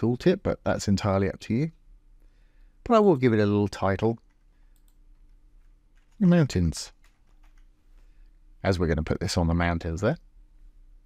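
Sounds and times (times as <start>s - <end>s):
mouse and keyboard clicks: 6.9s - 8.1s.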